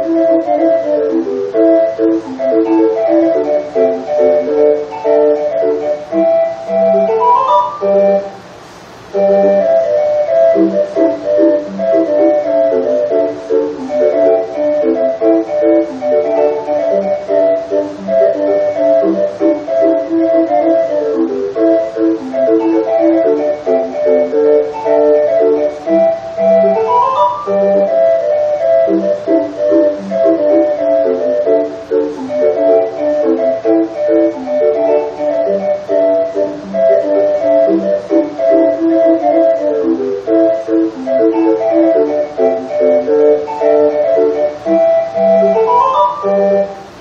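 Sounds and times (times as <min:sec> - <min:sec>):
street organ playing a tune: 0:00.0 - 0:47.0.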